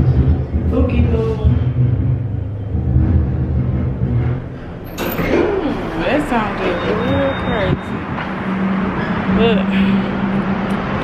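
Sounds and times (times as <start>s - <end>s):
elevator cab rumbling: 0.0s - 11.0s.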